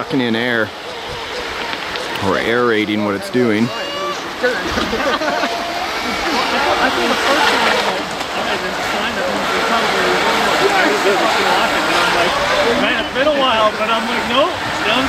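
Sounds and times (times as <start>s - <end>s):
people talking: 0.0s - 0.7s, 2.1s - 15.0s
river rushing over rocks: 0.0s - 15.0s.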